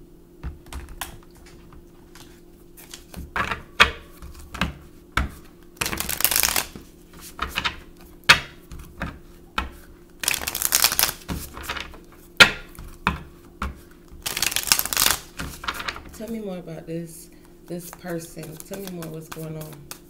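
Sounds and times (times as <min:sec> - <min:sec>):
cards tapping and slapping: 0:00.4 - 0:16.4, 0:17.8 - 0:20.0
cards being shuffled: 0:00.7 - 0:03.6, 0:05.3 - 0:16.4, 0:17.8 - 0:20.0.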